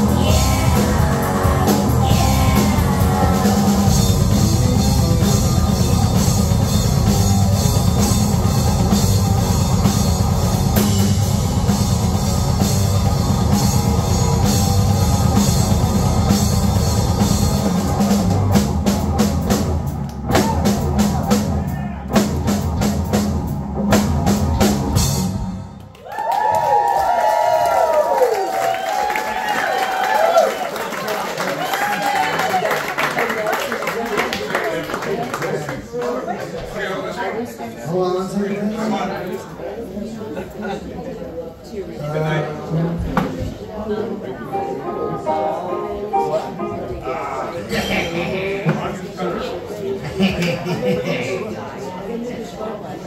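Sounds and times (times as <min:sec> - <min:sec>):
rock band playing: 0:00.0 - 0:26.0, 0:44.5 - 0:49.2.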